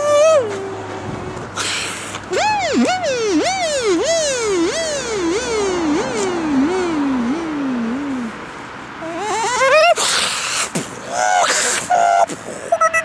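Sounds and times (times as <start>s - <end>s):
beatboxer swooping falling glides: 1.6s - 8.4s.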